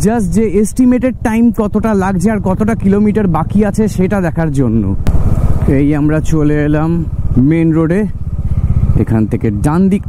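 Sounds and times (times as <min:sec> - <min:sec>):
motorcycle engine pulsing exhaust: 0:00.0 - 0:10.0.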